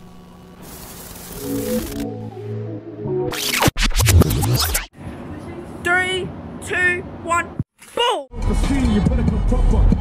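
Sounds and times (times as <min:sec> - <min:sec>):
glitchy noise bursts: 0:00.7 - 0:02.0.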